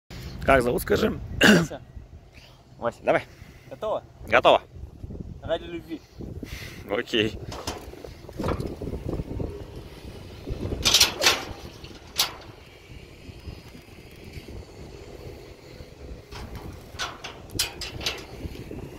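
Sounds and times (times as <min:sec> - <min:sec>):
wind buffeting microphone: 0:03.3 - 0:18.9
sharp rustles and knocks: 0:07.4 - 0:09.2, 0:10.2 - 0:18.9.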